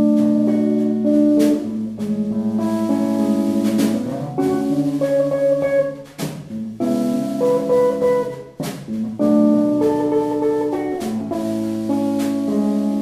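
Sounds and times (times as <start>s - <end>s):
acoustic guitar jazz chords: 0.0s - 13.0s.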